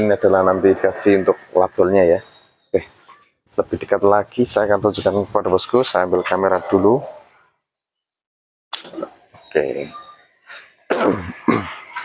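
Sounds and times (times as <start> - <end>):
man coughing: 10.9 - 12.0.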